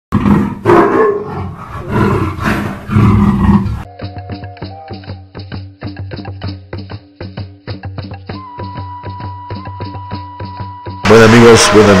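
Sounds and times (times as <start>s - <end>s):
loud rough roar: 0.1s - 3.8s
music with light percussion: 3.9s - 11.6s.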